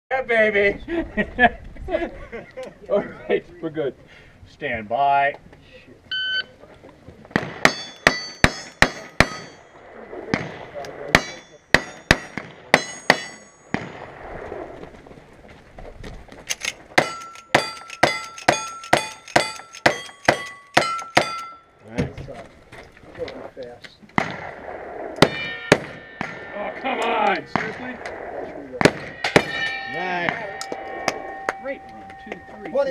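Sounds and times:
steel plate ringing: 7.7 - 9.7, 11.2 - 13.7, 17.0 - 21.8, 25.2 - 27.5, 29.1 - 32.9.

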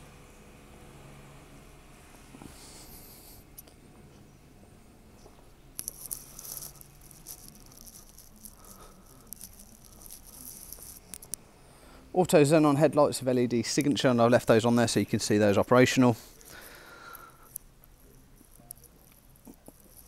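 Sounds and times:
faint low hum: 0.0 - 20.0
light rustling: 5.2 - 11.4
small ticks: 5.8 - 11.4.

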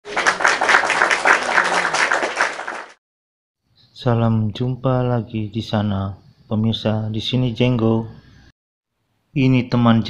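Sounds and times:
applause: 0.0 - 3.0.

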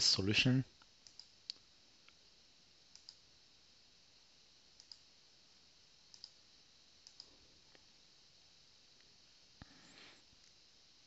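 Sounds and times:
computer mouse clicks: 1.0 - 2.2, 2.9 - 3.2, 4.8 - 5.0, 6.1 - 6.4, 7.0 - 7.3.

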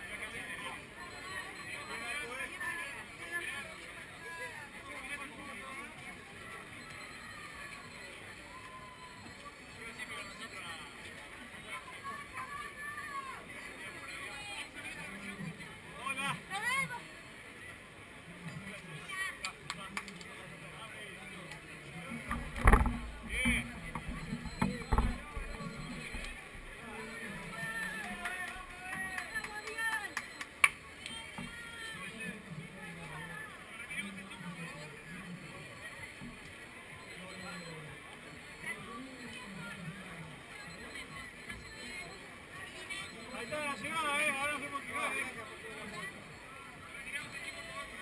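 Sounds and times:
crowd chatter: 0.0 - 48.0.

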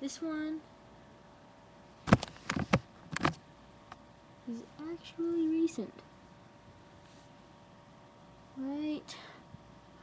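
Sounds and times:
microphone handling knocks and rubs: 2.1 - 3.4.

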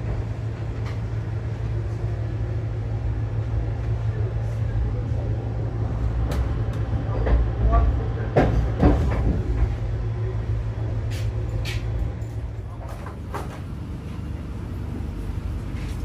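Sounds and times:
train rumbling along track: 0.0 - 16.0.

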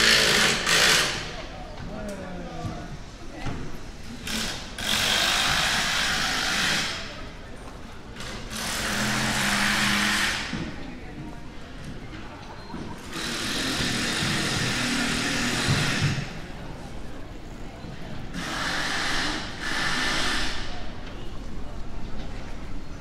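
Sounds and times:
harsh hissing machine noise: 0.0 - 1.3, 4.2 - 7.2, 8.5 - 10.6, 13.1 - 16.4, 18.3 - 20.8
passers-by talking faintly: 0.0 - 23.0.

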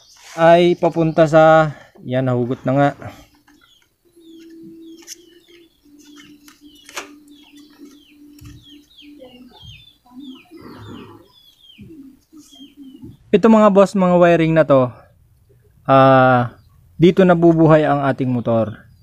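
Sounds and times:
bird chirping: 0.0 - 19.0.

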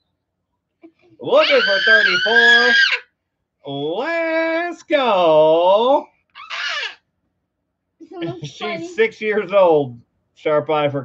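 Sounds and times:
girl squealing: 1.2 - 3.0, 6.4 - 7.0.

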